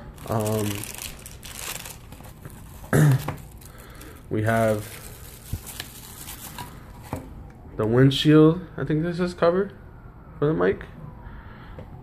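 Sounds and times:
plastic bags crinkling: 0.0 - 7.1
loud cough: 2.9 - 3.4.

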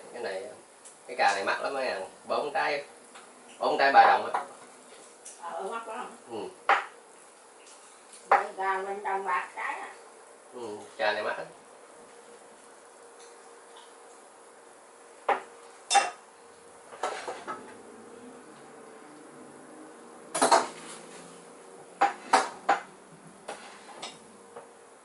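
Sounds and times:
faint steady hum: 0.0 - 25.0
dishes and cutlery clattering: 15.3 - 16.2, 17.0 - 17.7, 20.3 - 20.9.

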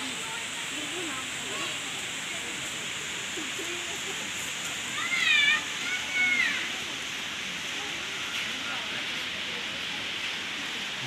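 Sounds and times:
outdoor hiss: 0.0 - 11.0.

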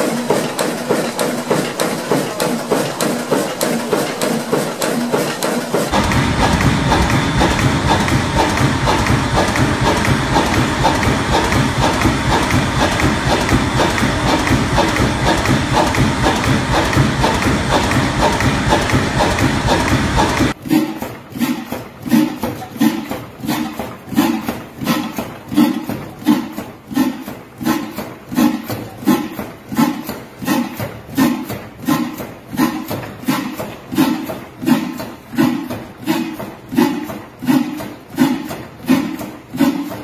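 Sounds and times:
deeper louder engine running: 5.9 - 20.6
stationary diesel engine thudding: 5.9 - 20.6.

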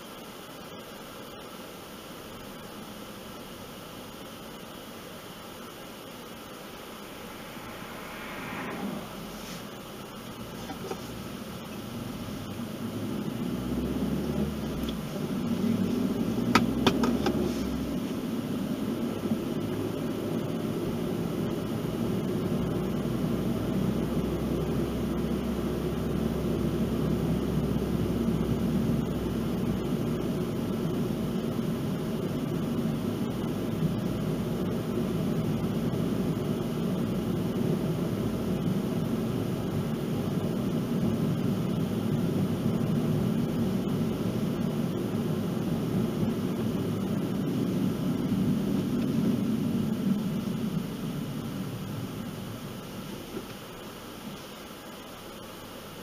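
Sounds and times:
road and tyre noise inside car: 0.0 - 56.0.

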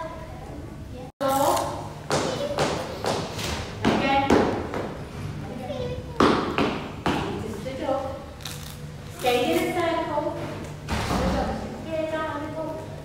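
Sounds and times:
voices in a large room: 0.0 - 13.0.

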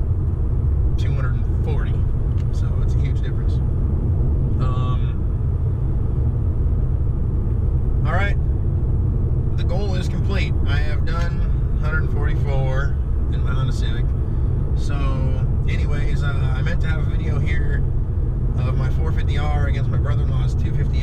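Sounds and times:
car road and engine rumble: 0.0 - 21.0
man talking: 1.0 - 3.6, 4.6 - 5.2, 8.0 - 8.4, 9.6 - 14.1, 14.8 - 17.8, 18.6 - 21.0.

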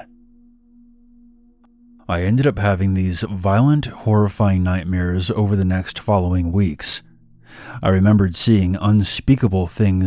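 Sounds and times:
low ambient music drone: 0.0 - 10.0.

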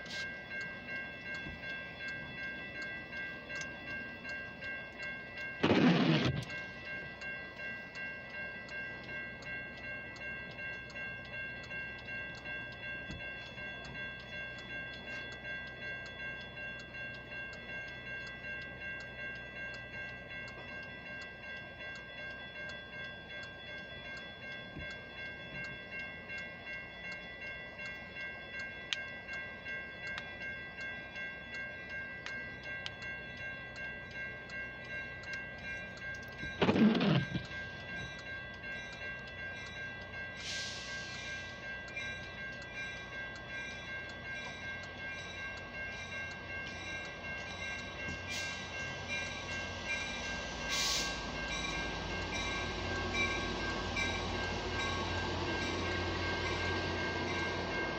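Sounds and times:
railroad crossing bell ringing: 0.0 - 57.9.

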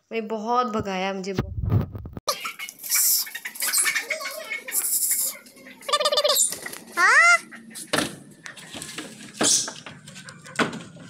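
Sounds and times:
chicken squawk: 2.4 - 7.8.

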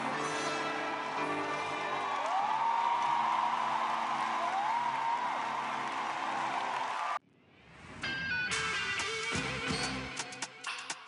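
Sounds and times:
audience cheering: 0.6 - 7.2
loud whoops from crowd: 1.0 - 7.2.

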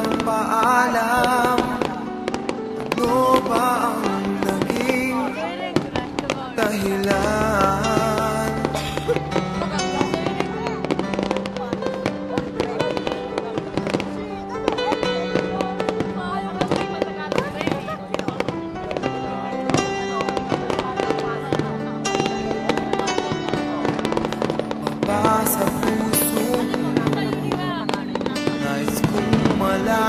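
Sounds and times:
fireworks bursting: 0.0 - 30.0
music with long held notes: 0.0 - 30.0.

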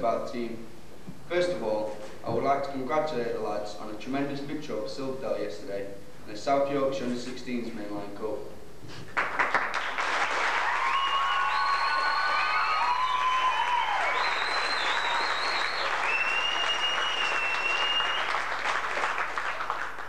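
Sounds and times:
audience clapping and cheering: 9.1 - 20.0
high drawn-out whistles: 10.8 - 18.5.

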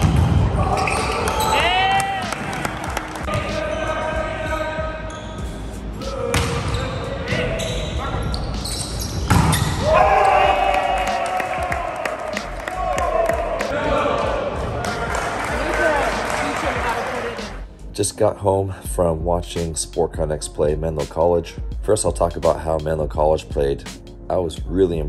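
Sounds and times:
sneakers squeaking on gym floor: 0.0 - 1.8, 2.7 - 9.9
volleyball slaps: 6.3 - 6.7, 9.2 - 9.9
players shouting: 9.6 - 17.5.

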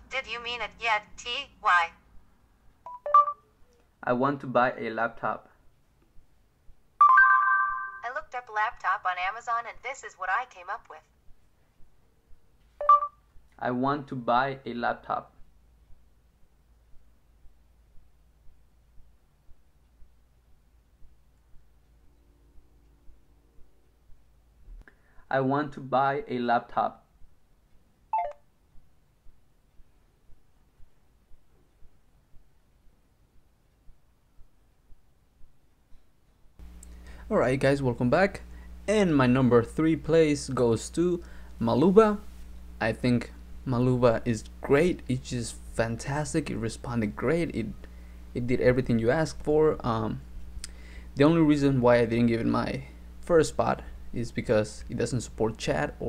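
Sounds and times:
phone electronic beeps: 2.9 - 3.5, 12.8 - 13.2, 28.1 - 28.4.

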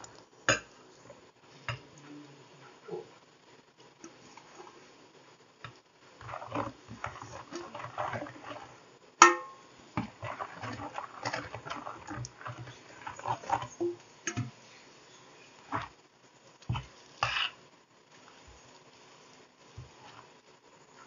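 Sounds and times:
leaves scraping on metal: 6.2 - 8.9, 9.8 - 16.0.

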